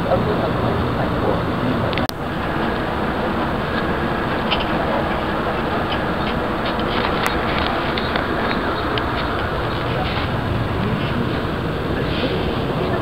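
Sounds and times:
bus engine and road noise: 0:00.0 - 0:13.0.

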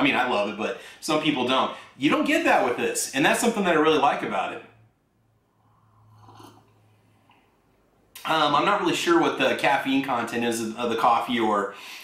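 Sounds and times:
sip and swallow of coffee: 0:05.7 - 0:06.9.

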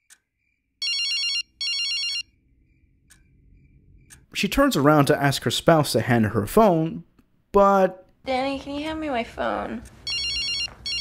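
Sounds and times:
phone ringing electronic trill: 0:00.8 - 0:02.3, 0:10.1 - 0:11.0.

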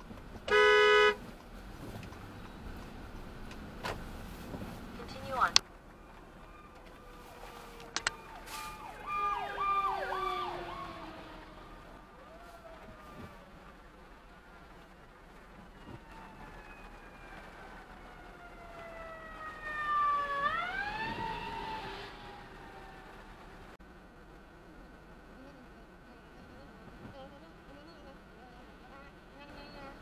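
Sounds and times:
emergency vehicle siren: 0:05.3 - 0:23.8.

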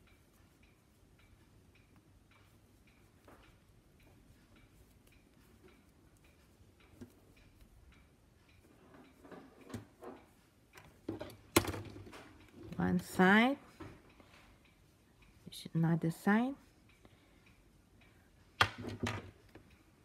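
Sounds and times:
faint regular ticking: 0:00.0 - 0:18.6, 0:19.3 - 0:20.0
knitting needles clicking: 0:00.0 - 0:20.0.

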